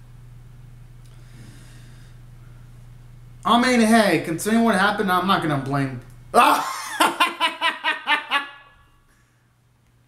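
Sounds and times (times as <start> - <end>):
man laughing heartily: 6.4 - 8.9.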